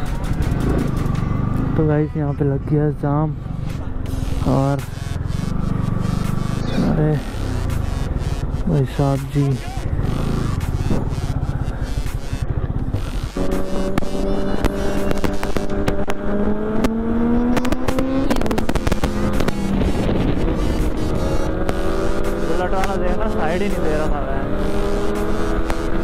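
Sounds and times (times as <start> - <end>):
motorcycle engine: 0.0 - 26.0.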